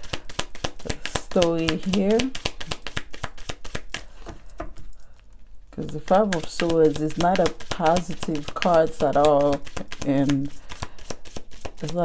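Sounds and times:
cards being shuffled: 0.0 - 5.1, 5.8 - 12.0.

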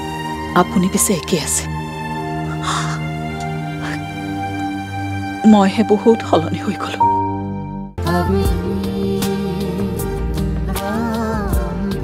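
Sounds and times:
music of held chords: 6.5 - 12.0.

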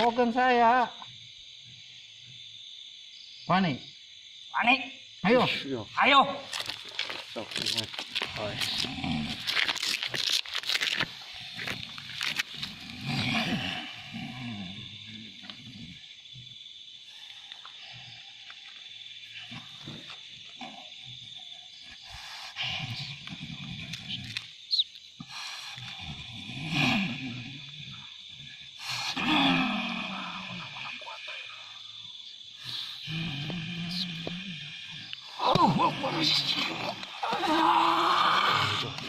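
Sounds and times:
person growling and roaring: 8.3 - 9.6, 12.6 - 16.0, 25.9 - 28.0, 29.1 - 31.2, 33.0 - 39.0.

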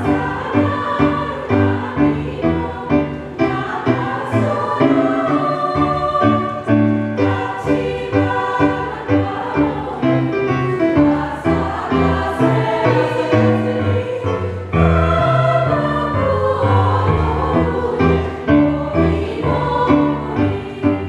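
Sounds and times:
small choir singing: 0.0 - 21.0.

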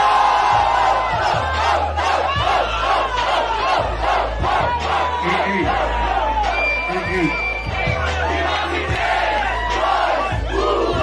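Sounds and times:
crowd shouting and cheering: 0.0 - 11.0
hip-hop beat with deep bass: 0.0 - 11.0.

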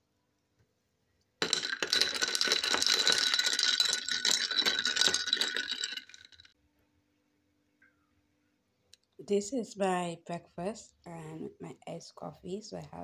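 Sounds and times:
ice cubes clinking in a glass: 1.4 - 6.6.

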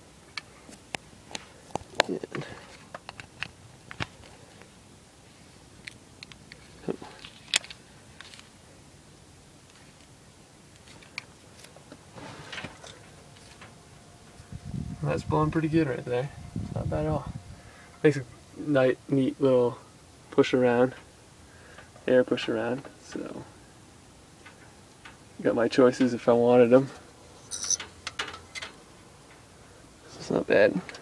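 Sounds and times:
faint fan hum: 0.0 - 31.0.

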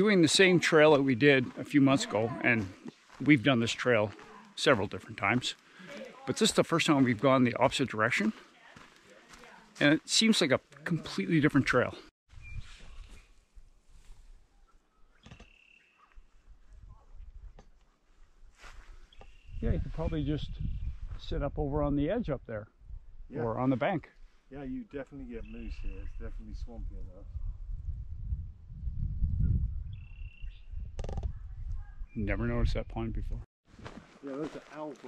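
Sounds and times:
wind rumble on microphone: 18.8 - 23.3, 25.2 - 33.4.

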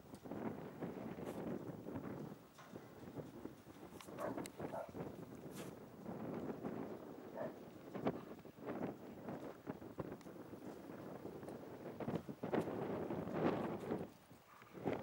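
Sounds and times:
gusty wind buffeting microphone: 0.0 - 15.0.

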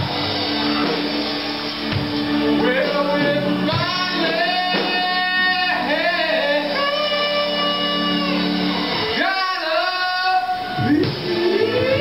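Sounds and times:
guitar: 0.0 - 12.0
live band music: 0.0 - 12.0
person singing: 2.3 - 12.0.

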